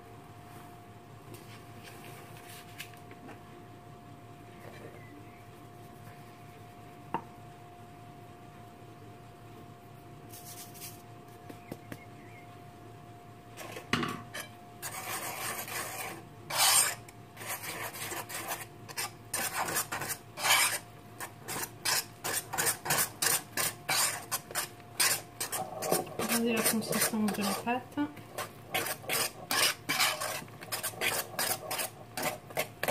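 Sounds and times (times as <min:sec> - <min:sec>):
flour sifting through sieve: 0:10.3 - 0:11.5, 0:14.8 - 0:32.9
whisk scraping ceramic bowl: 0:13.6 - 0:32.9.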